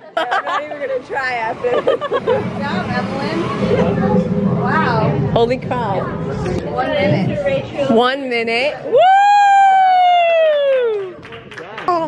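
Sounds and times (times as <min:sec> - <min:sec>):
person cheering woooo: 0:08.9 - 0:11.2.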